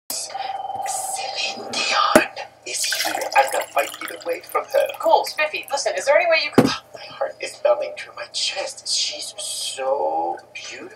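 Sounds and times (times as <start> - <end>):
water pouring into a glass: 2.7 - 5.8.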